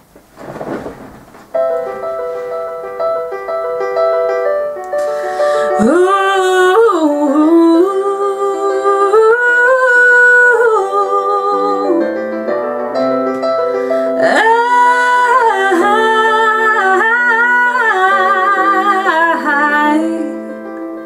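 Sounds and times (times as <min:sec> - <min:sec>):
piano backing track: 0:00.0 - 0:21.0.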